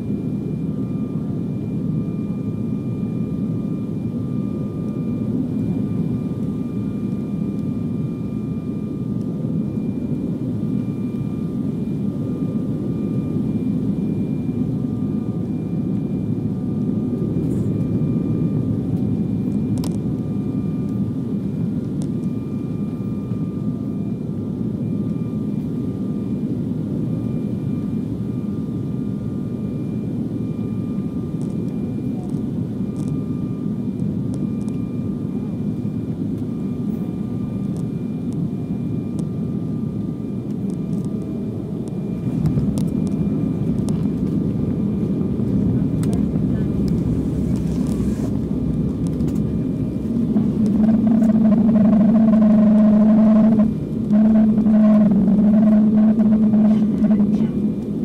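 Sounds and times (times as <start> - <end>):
jet engine rumble in cabin: 0.0 - 58.0
engine drone spooling up: 40.6 - 58.0
airflow: 46.5 - 57.8.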